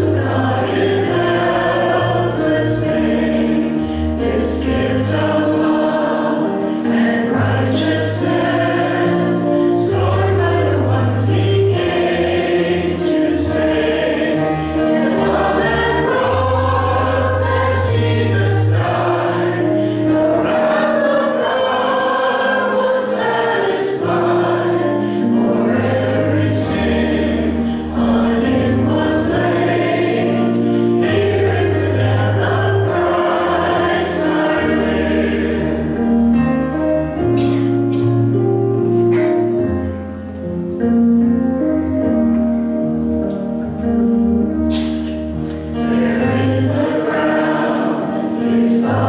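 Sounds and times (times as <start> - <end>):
vocal group singing gospel: 0.0 - 36.3, 45.6 - 49.0
instrumental accompaniment: 0.0 - 49.0.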